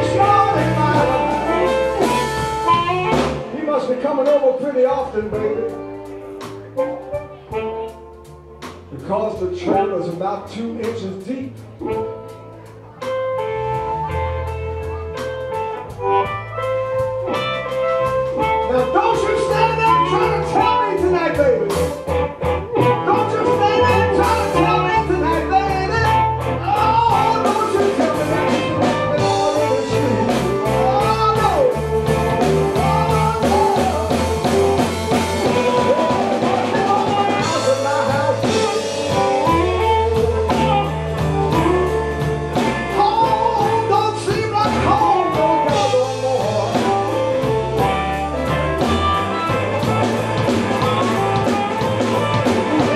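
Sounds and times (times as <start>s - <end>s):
electric guitar fills: 0.0s - 10.0s, 11.3s - 52.9s
live blues band playing: 0.0s - 52.9s.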